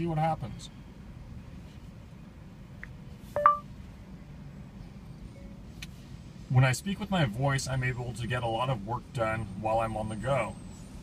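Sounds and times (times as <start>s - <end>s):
two-note phone beep: 3.4s - 3.7s.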